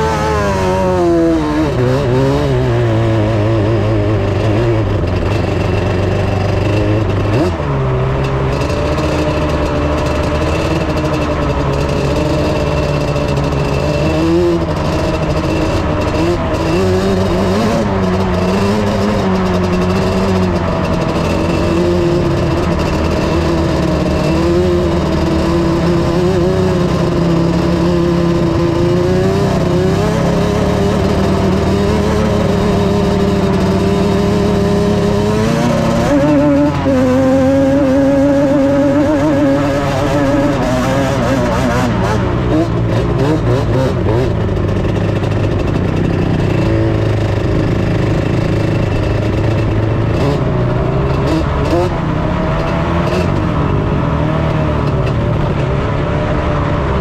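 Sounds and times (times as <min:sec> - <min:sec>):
vehicle engine driving on sand: 0:00.0 - 0:57.0.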